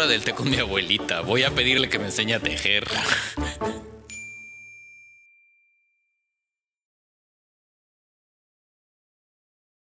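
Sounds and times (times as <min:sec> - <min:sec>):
bright bell-like ding: 0:04.1 - 0:06.3.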